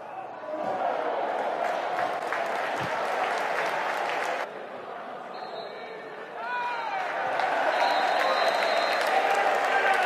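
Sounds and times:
crowd cheering: 0.0s - 10.0s
crowd clapping: 1.3s - 4.5s, 6.7s - 10.0s.

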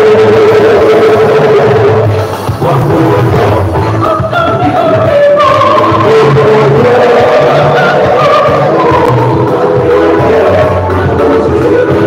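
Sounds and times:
church choir singing: 0.0s - 12.0s
instrumental accompaniment: 0.0s - 12.0s.

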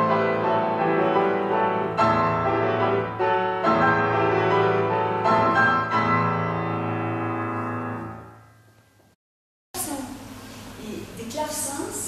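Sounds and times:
grand piano chords: 0.0s - 9.2s.

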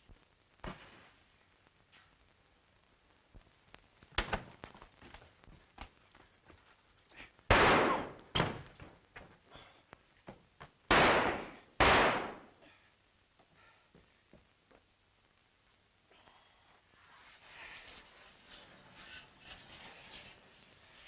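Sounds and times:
loud sharp bangs: 7.5s - 8.6s, 10.9s - 12.6s.

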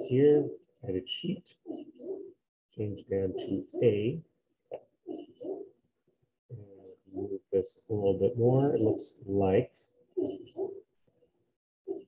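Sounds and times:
bird cooing softly: 1.6s - 2.4s, 5.0s - 5.8s, 6.5s - 7.4s, 10.0s - 10.9s.

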